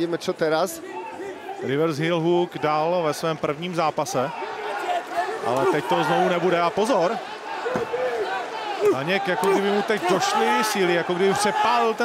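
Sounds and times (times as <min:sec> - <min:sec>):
arena crowd: 0:00.0 - 0:12.0
men shouting: 0:04.3 - 0:12.0.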